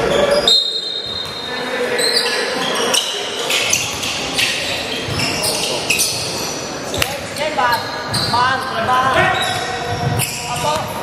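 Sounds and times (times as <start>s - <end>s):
sneakers squeaking: 0.0s - 11.0s.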